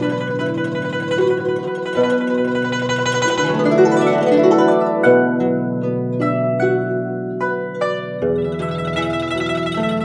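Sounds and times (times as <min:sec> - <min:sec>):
plucked-string melody: 0:00.0 - 0:10.0.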